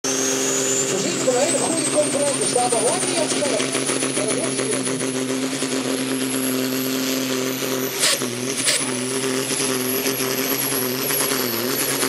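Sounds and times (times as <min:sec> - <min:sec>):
tractor engine with high whine: 0:00.0 - 0:12.0
person speaking: 0:01.0 - 0:04.8.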